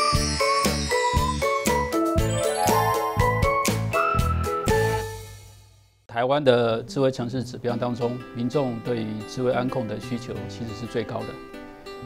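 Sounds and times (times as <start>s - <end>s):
upbeat music with quick beat: 0.1s - 5.4s.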